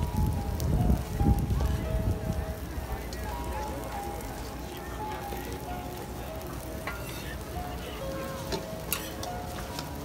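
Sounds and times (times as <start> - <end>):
pancakes sizzling on a griddle: 0.0 - 10.0
metal spatula clicking on griddle: 8.5 - 10.0.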